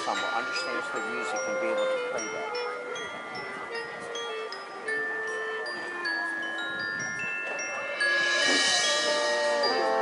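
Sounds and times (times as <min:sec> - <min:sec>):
mallet percussion notes: 0:00.0 - 0:10.0.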